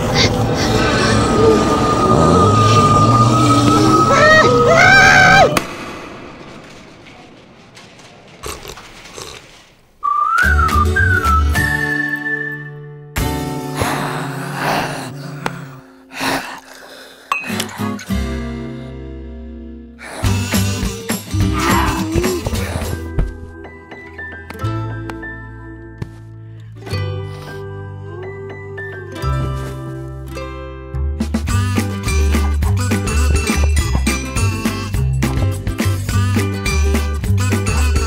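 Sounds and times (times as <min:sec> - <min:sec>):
cartoon zombie moan: 0:00.0 - 0:05.6, 0:13.6 - 0:16.7, 0:21.3 - 0:23.0
whistled melody over bass: 0:01.2 - 0:04.7, 0:10.0 - 0:13.7, 0:23.6 - 0:38.0
cartoon character wailing: 0:03.8 - 0:05.6
background music: 0:10.1 - 0:38.0.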